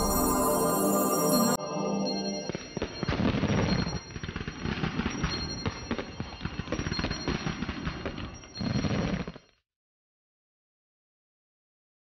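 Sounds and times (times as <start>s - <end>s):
faint high ringing tone: 0.0s - 7.4s
dense crackling and popping: 2.5s - 9.5s.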